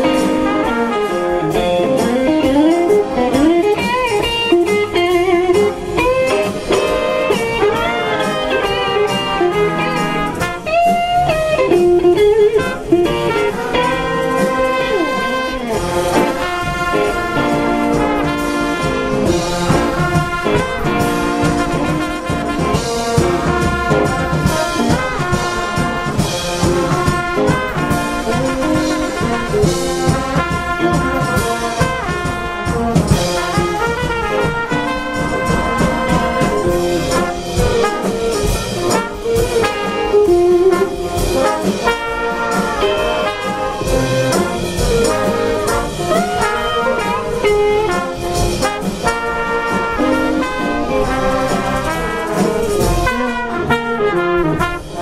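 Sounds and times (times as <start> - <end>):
jazz big band playing blues: 0.0 - 55.0.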